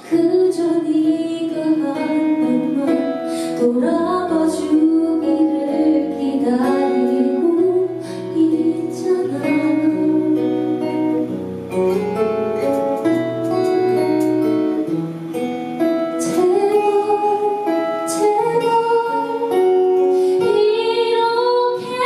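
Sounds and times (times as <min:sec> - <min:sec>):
woman singing: 0:00.0 - 0:11.3, 0:15.8 - 0:22.0
acoustic guitar: 0:00.0 - 0:22.0.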